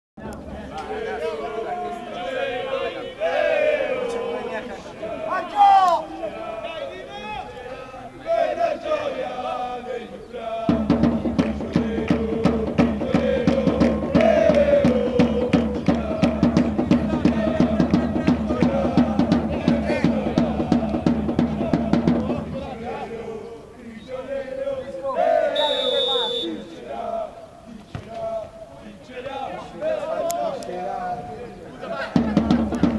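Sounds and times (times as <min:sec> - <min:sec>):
crowd chanting in unison: 0:00.2 - 0:32.9
people shouting: 0:05.0 - 0:09.2, 0:25.1 - 0:27.1
drum beating steadily: 0:10.6 - 0:22.9, 0:32.0 - 0:32.9
whistle blast: 0:25.5 - 0:26.7.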